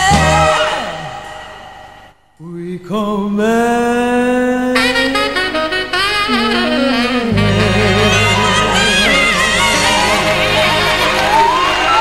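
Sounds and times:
live band playing pop ballad: 0.0 - 1.1, 5.8 - 12.0
saxophone melody with vibrato: 0.0 - 1.1, 4.7 - 12.0
low bass notes: 0.0 - 1.2, 6.4 - 12.0.

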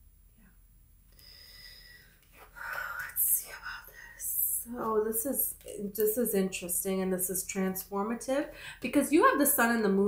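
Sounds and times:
woman whispering: 2.5 - 5.8.

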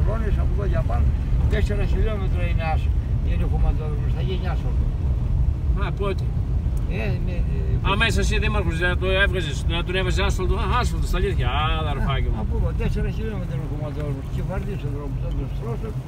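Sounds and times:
man talking: 0.0 - 4.9, 5.6 - 16.0
car rumble on gravel: 7.8 - 16.0.

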